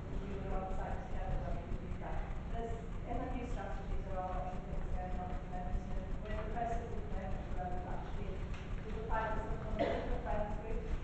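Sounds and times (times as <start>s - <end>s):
low uneven rumble: 0.0s - 11.0s.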